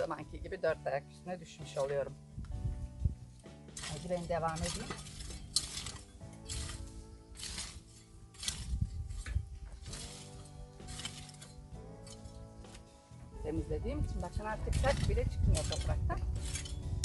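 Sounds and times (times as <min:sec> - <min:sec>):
metal rake scraping stony soil: 0:01.3 - 0:17.0.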